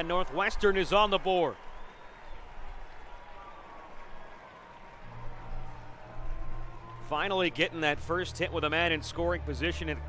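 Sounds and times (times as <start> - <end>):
crowd cheering and clapping: 0.0 - 8.8.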